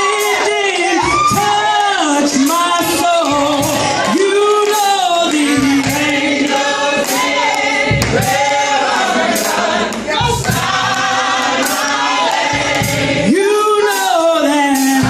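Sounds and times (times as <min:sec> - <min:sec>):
group singing gospel harmony: 0:00.0 - 0:15.0
steady sharp percussive hits: 0:00.0 - 0:15.0.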